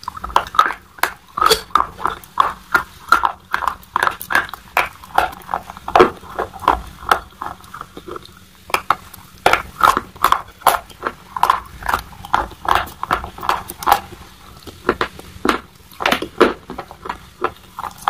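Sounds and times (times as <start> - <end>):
chalk being chewed: 0.0 - 18.0.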